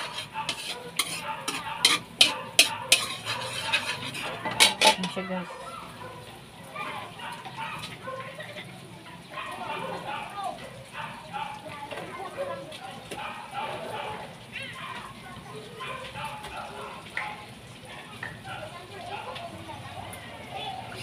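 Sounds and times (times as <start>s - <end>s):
butter sizzling in a wok: 0.0s - 9.6s, 10.5s - 21.0s
background voices talking: 0.0s - 21.0s.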